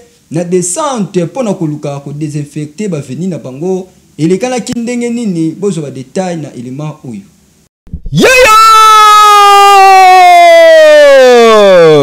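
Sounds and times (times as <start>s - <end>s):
siren wail: 8.2s - 12.0s.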